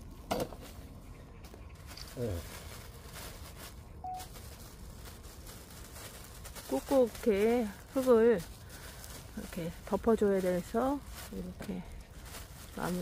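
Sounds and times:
plastic film crinkling: 1.7s - 13.0s.

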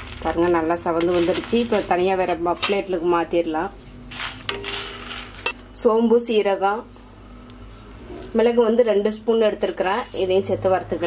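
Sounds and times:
spatula stirring dry chillies: 0.0s - 2.8s, 4.1s - 5.6s.

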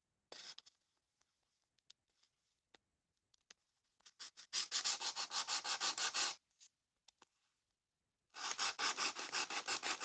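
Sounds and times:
nail file rasping on plastic: 4.1s - 6.4s, 8.4s - 10.0s.

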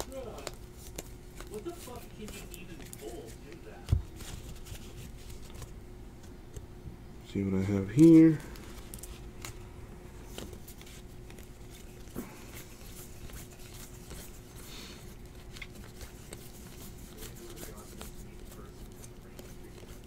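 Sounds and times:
cards being flipped through: 0.0s - 6.7s, 8.0s - 20.0s
faint steady hum: 0.0s - 20.0s.

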